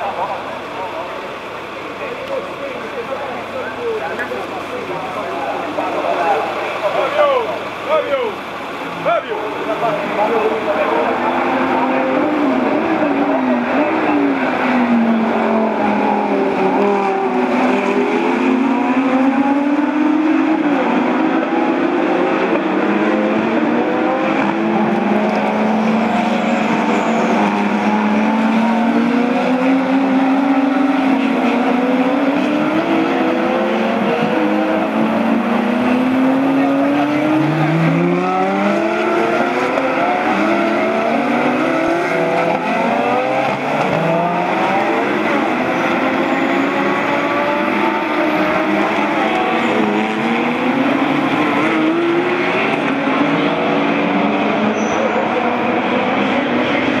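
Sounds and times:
race car engines accelerating: 0.0 - 57.0.

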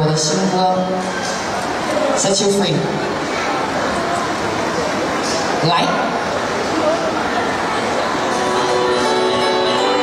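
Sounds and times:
crowd noise: 0.0 - 10.0
instrumental backing track: 8.2 - 10.0.

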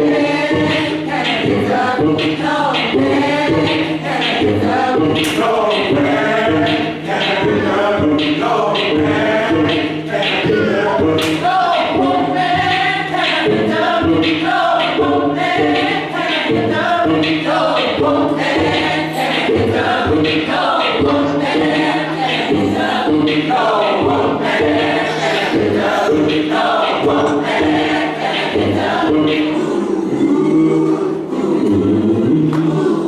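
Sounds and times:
choir singing gospel song: 0.0 - 33.0.

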